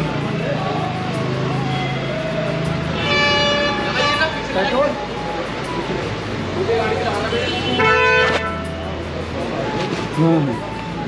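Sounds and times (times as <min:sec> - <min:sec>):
vehicle horn toot: 0:03.0 - 0:04.7, 0:07.2 - 0:08.8.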